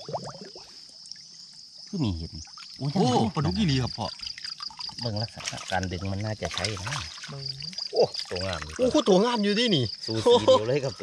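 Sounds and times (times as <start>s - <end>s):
water trickling: 0.0s - 11.0s.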